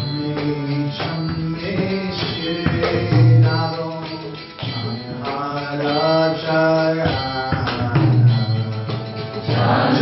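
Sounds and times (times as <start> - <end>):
man singing a chant: 5.0 - 8.9.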